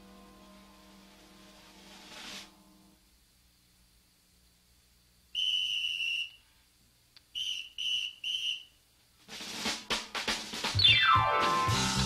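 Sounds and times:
drum kit playing: 0.0s - 2.6s, 9.2s - 12.0s
shrill whistle: 5.3s - 6.5s, 7.3s - 8.8s
band playing: 9.6s - 12.0s.

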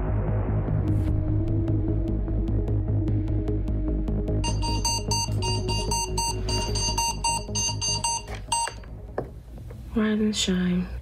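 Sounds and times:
alarm clock beeping: 4.4s - 8.9s.

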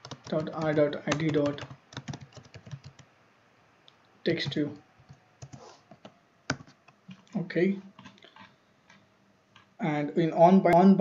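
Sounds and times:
typing on computer keyboard: 0.0s - 3.1s, 4.4s - 7.2s.

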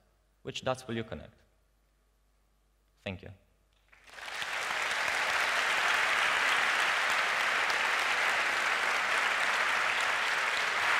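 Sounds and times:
audience applauding: 3.9s - 10.9s.

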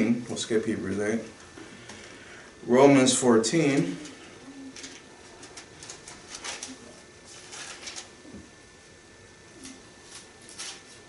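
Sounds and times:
thin pages rustling: 4.7s - 8.4s, 9.6s - 11.0s.

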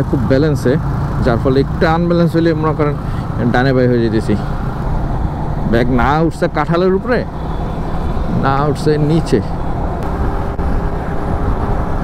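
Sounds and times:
man speaking: 0.0s - 4.6s, 5.6s - 7.3s, 8.3s - 9.6s
motorcycle engine rumble: 0.0s - 12.0s
wind noise: 9.5s - 12.0s.

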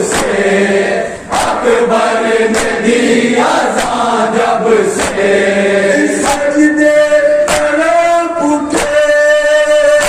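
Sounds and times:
crowd of men chanting in unison: 0.0s - 8.4s.

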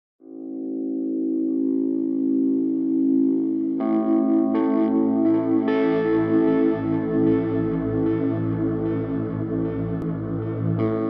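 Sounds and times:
electric guitar sustained chord: 0.2s - 11.0s
ringing guitar notes: 0.2s - 11.0s.

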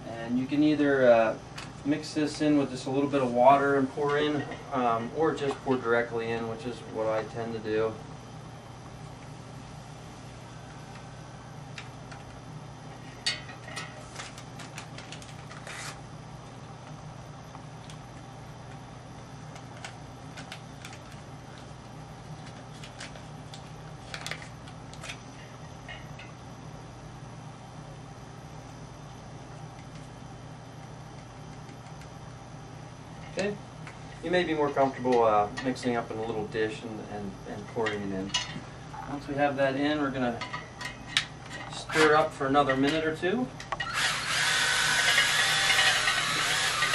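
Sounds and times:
low background hum: 0.0s - 46.9s.

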